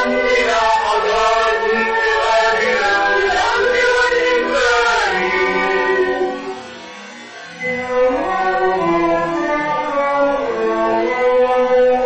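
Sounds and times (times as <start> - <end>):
vocal trio singing: 0.0 - 12.0.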